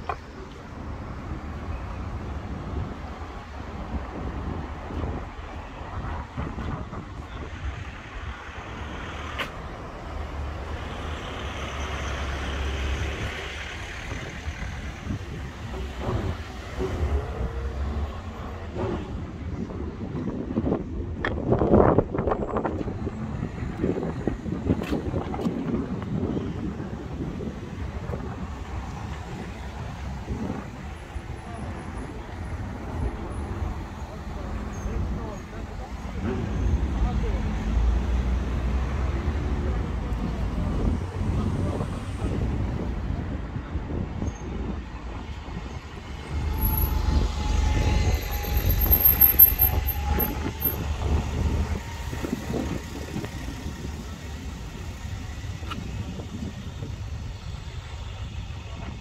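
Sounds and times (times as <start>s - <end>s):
bus passing with whine: 0.0s - 59.0s.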